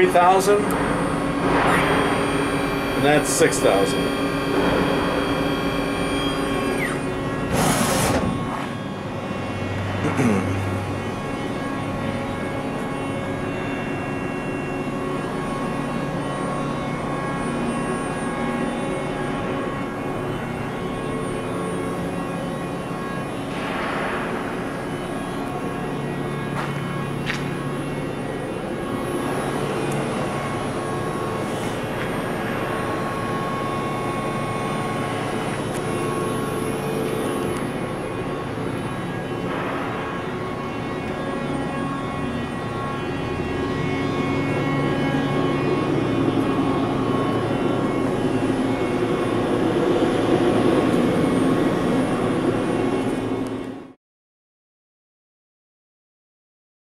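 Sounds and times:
lathe machine hum: 0.0 - 53.8.

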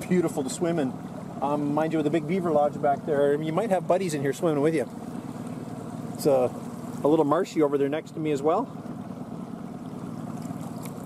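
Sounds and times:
outboard motor idling: 0.0 - 11.0.

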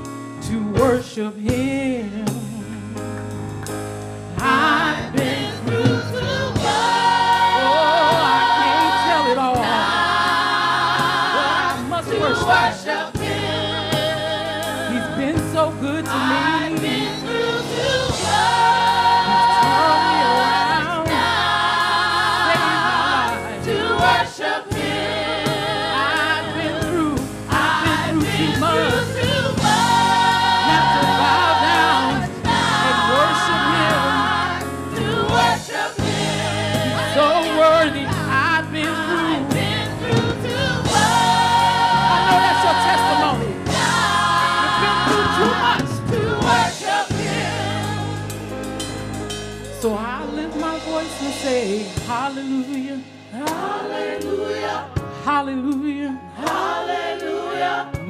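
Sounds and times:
instrumental backing with bass: 0.0 - 58.0
gospel choir singing: 4.3 - 58.0
lead soloist singing: 4.4 - 35.7, 36.3 - 47.9.

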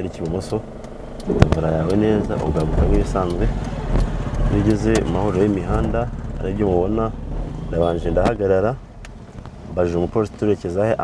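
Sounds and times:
car engine and road hum: 0.0 - 11.0
person speaking: 1.3 - 3.8.

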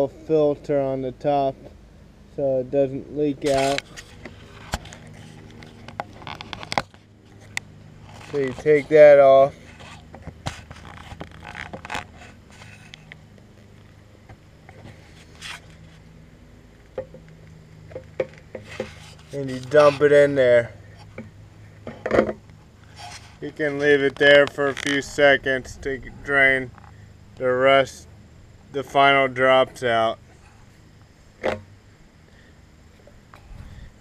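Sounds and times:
plastic scrape: 3.5 - 7.0, 22.9 - 25.1.

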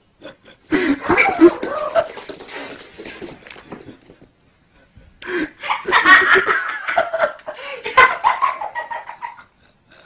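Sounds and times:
people laughing loudly: 3.7 - 10.0.

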